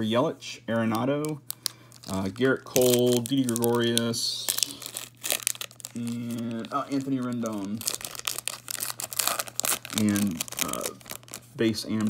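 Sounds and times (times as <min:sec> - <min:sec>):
foil wrapper tearing and crinkling: 0:01.5 - 0:12.0.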